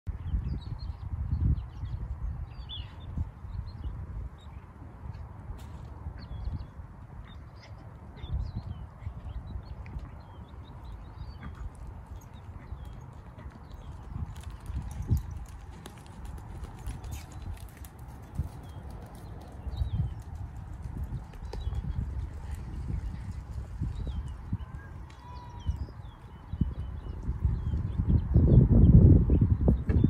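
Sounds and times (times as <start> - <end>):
horse hoofbeats on sand: 9.9 - 25.9.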